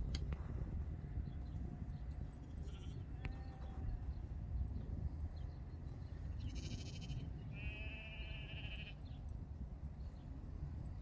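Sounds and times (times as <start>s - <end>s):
steady low rumble: 0.0s - 7.6s
sheep bleating: 6.5s - 9.0s.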